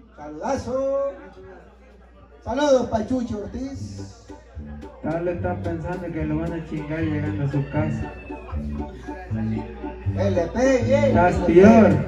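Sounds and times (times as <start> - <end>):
banda music playing quietly: 2.6 - 12.0.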